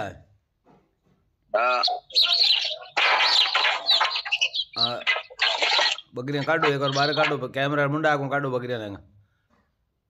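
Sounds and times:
birds chirping: 1.6 - 7.5.

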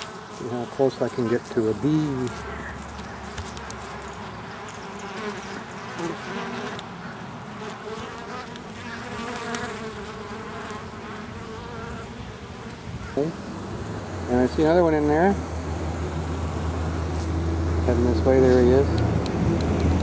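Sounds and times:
honey bees buzzing: 0.0 - 20.0.

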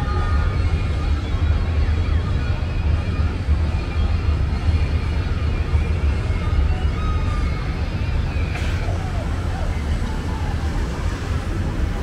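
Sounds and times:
faint voices of passers-by: 0.0 - 12.0
low street rumble: 0.0 - 12.0.

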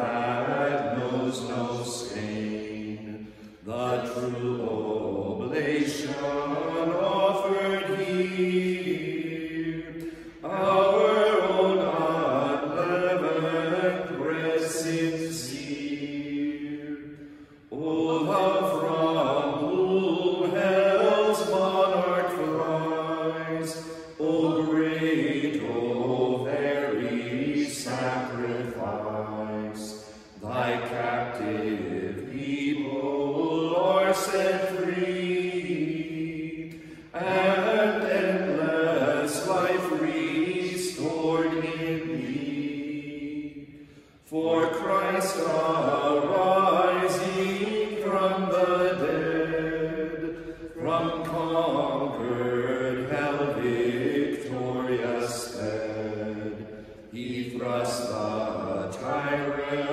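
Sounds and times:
men chanting unaccompanied: 0.0 - 17.0, 17.7 - 43.6, 44.3 - 59.9
breath: 3.2 - 3.6, 10.0 - 10.4, 17.2 - 17.7, 30.0 - 30.4, 36.7 - 37.1, 43.7 - 44.2, 50.3 - 50.8, 56.6 - 57.1.

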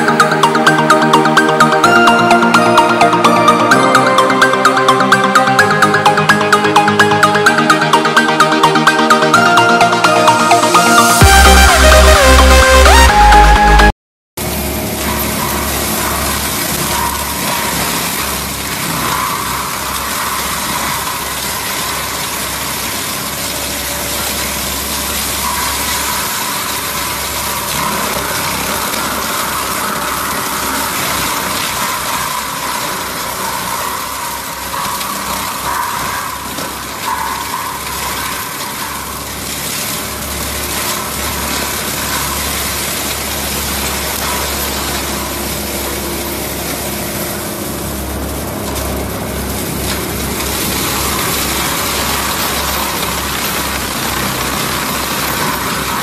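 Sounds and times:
diesel engine under load: 0.0 - 56.0
mulcher drum shredding brush: 14.4 - 56.0.

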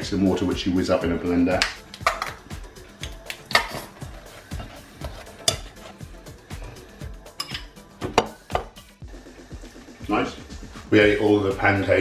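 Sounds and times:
background music: 0.0 - 12.0
knife clinking on ceramic plate: 7.4 - 8.6.

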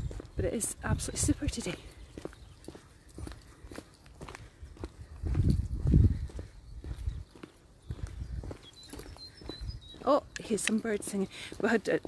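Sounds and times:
footsteps on pavement: 0.0 - 12.0.

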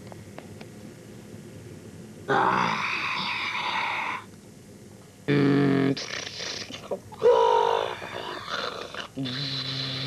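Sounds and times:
boy wailing: 7.2 - 8.5.

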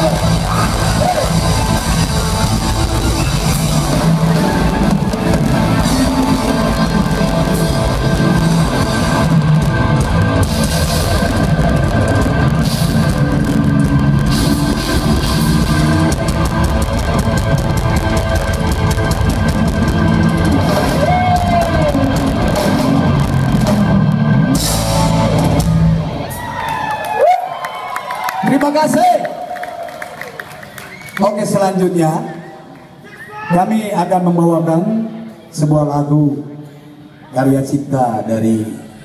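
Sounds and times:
drum kit: 0.0 - 26.5
electric guitar: 0.0 - 27.4
keyboards: 0.0 - 27.5.

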